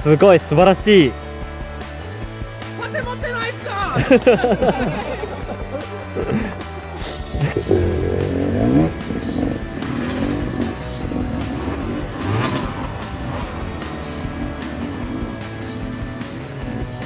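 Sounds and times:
background music: 0:00.0 - 0:17.0
motorcycle engine revving: 0:04.0 - 0:17.0.

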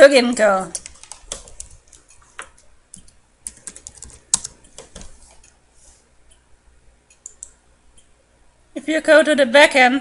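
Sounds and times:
woman speaking: 0:00.0 - 0:00.8, 0:08.8 - 0:10.0
computer mouse clicks: 0:07.1 - 0:08.1.

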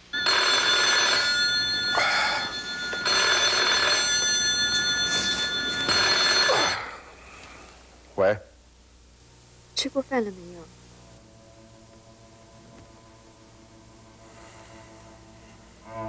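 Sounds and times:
telephone ringing: 0:00.0 - 0:07.1.

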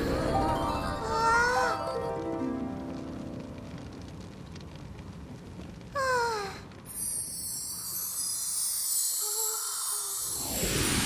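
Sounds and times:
fire burning: 0:00.0 - 0:11.0
magic shimmer: 0:06.9 - 0:11.0.

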